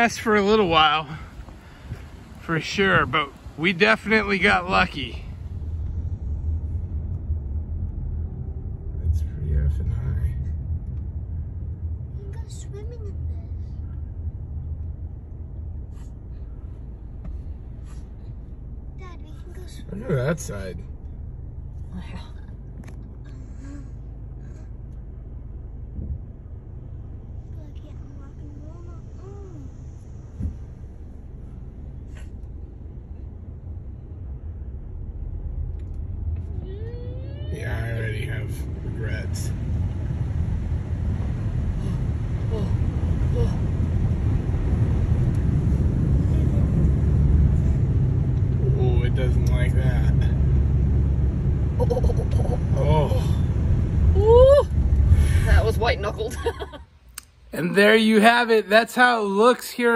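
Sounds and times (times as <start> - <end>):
car cabin rumble: 0.0 - 58.2.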